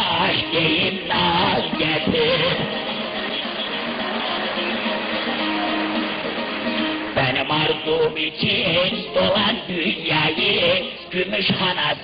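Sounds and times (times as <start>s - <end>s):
folk music accompaniment: 0.0s - 12.0s.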